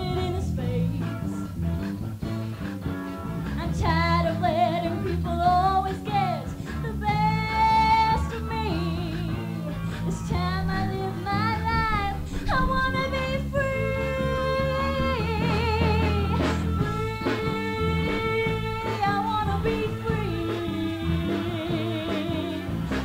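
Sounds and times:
instrumental accompaniment with bass: 0.0s - 23.0s
person singing with vibrato: 6.2s - 22.8s.

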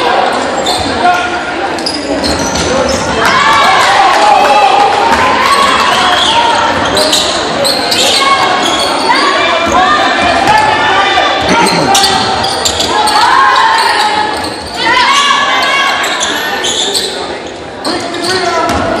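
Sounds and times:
people calling out: 7.6s - 17.0s.

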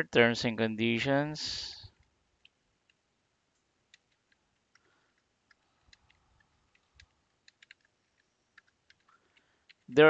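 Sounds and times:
keyboard keystrokes: 5.5s - 9.9s.

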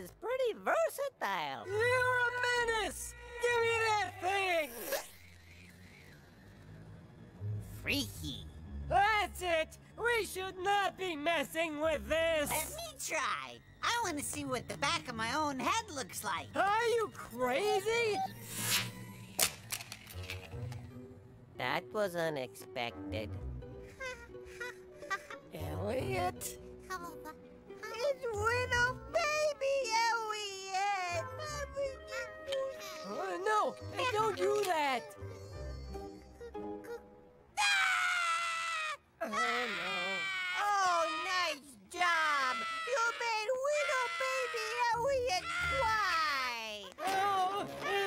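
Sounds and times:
cartoon baby wailing: 37.6s - 46.2s.

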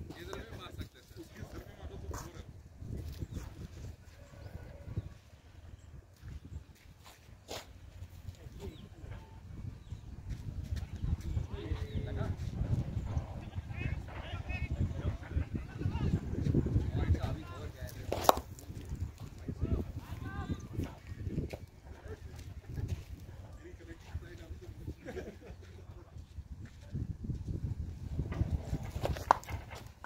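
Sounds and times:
faint distant voices: 8.2s - 27.1s.

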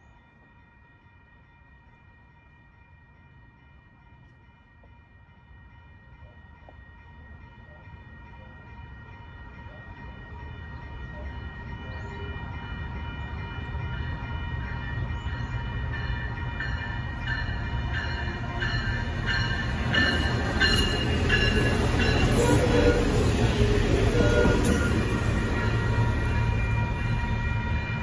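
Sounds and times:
train low rumble: 0.0s - 28.0s.

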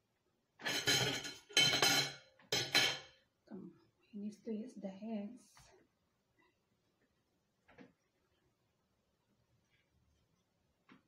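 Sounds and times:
mussel shells clinking on a plate: 0.6s - 3.1s.

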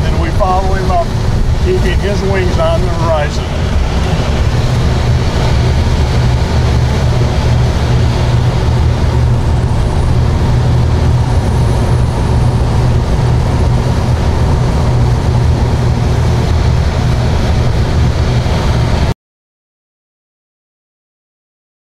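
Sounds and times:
air rushing: 0.0s - 19.1s
plane engine drone: 0.0s - 19.2s.

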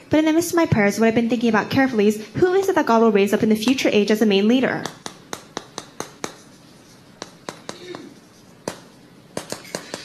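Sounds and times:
chalk tapping on chalkboard: 4.8s - 10.0s.

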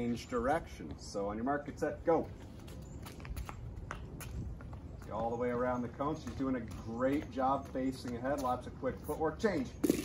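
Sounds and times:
footsteps on concrete: 0.0s - 10.0s.

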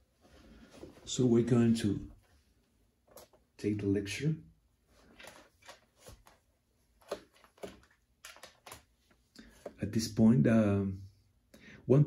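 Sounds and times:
light handling clicks and rustles: 5.0s - 9.8s.

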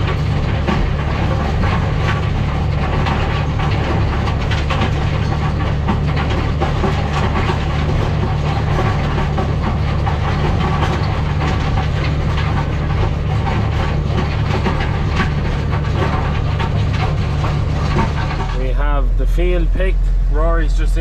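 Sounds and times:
stones rattling through rotor: 0.0s - 18.8s
tractor engine running: 0.0s - 21.0s.

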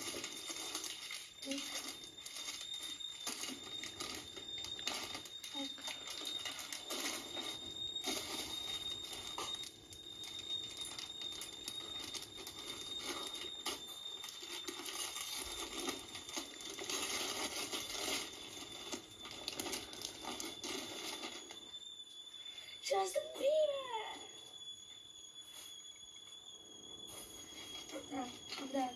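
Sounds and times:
gift wrap rustling and crinkling: 0.0s - 21.8s
steady high-pitched whine: 0.0s - 28.9s.

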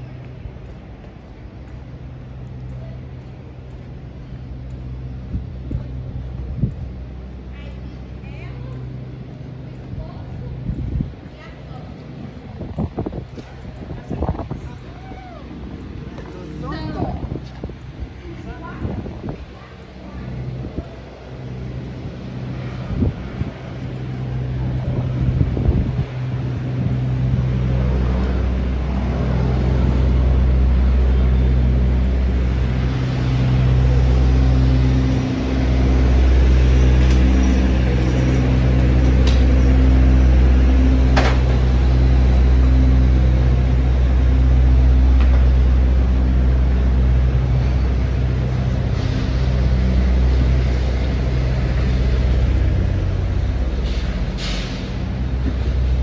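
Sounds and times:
heavy vehicle engines humming: 0.0s - 56.0s.

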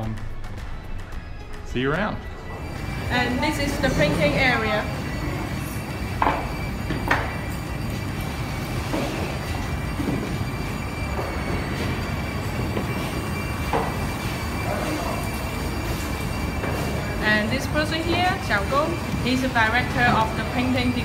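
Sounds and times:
factory floor rumble: 0.0s - 21.0s
faint steady tones: 2.0s - 21.0s
woman speaking: 3.1s - 5.0s, 17.2s - 21.0s.

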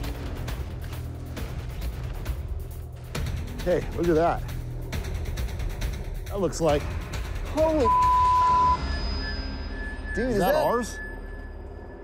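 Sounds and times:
censor bleep: 7.8s - 12.0s.

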